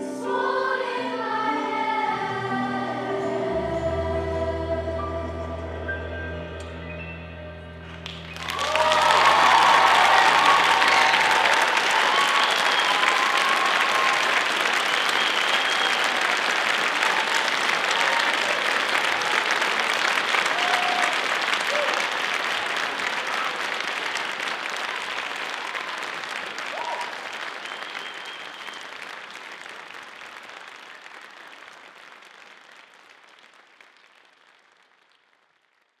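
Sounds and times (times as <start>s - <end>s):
music: 0.0s - 9.3s
audience applause and cheering: 7.8s - 36.0s
whoops: 8.2s - 18.6s, 20.5s - 22.1s, 26.7s - 29.0s.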